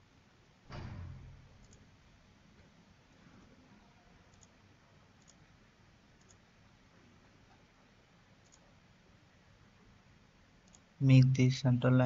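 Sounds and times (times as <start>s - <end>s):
faint computer mouse clicks: 1.6s - 1.8s, 4.3s - 4.6s, 5.2s - 5.4s, 6.2s - 6.4s, 8.4s - 8.6s, 10.6s - 10.9s.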